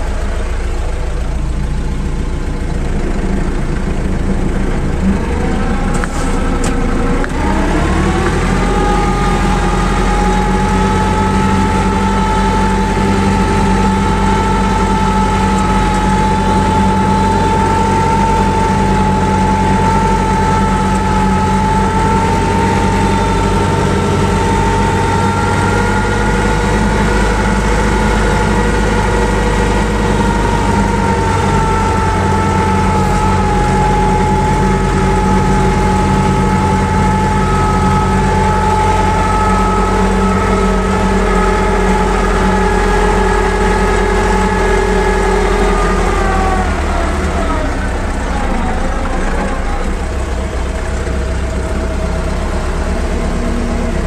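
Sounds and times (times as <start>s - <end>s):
steady whine: 0.0s - 54.0s
tractor engine running: 0.0s - 54.0s.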